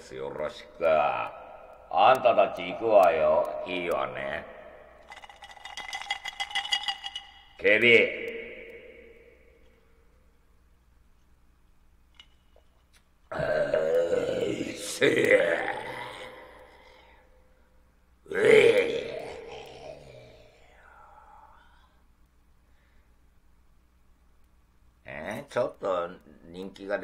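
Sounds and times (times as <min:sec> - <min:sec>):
man's loud wordless vocal sound: 0:00.0 - 0:04.5, 0:13.3 - 0:17.0, 0:18.3 - 0:21.6
ice cubes clinking in a glass: 0:05.0 - 0:07.6.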